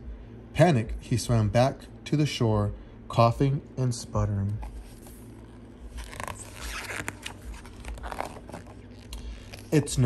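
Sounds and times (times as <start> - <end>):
book page turning: 4.6 - 10.0.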